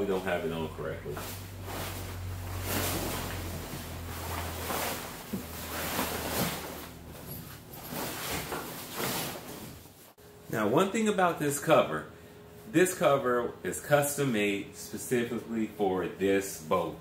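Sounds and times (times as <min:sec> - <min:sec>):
fabric cover dragged over boat: 0:01.1 - 0:10.2.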